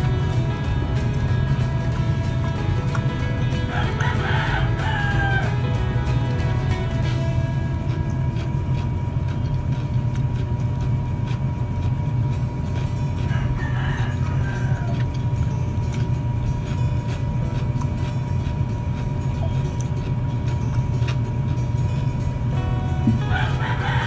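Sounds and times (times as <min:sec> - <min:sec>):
steady low hum: 0:00.0 - 0:24.0
rooster crowing: 0:03.6 - 0:05.8, 0:13.2 - 0:15.3, 0:23.1 - 0:24.0.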